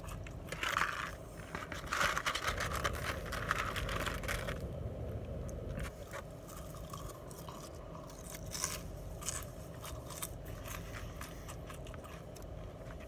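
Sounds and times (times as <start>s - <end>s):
chewing crunchy fries: 0.0s - 13.0s
low car hum: 0.0s - 13.0s.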